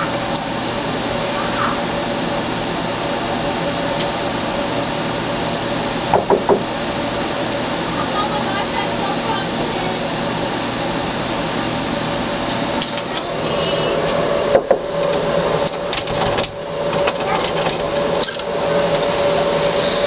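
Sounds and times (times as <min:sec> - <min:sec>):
motor-like whirring hum: 0:00.0 - 0:20.0.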